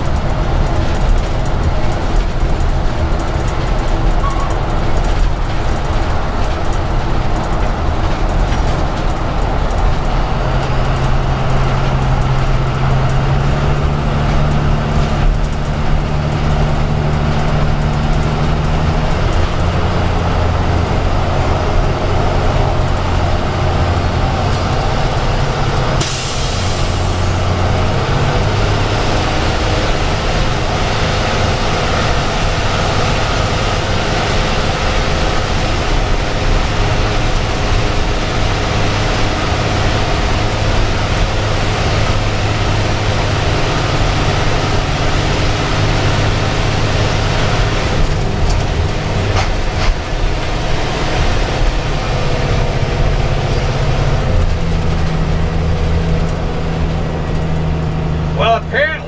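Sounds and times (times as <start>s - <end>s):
bus engine running: 0.0s - 59.0s
tyre and road noise: 0.0s - 59.0s.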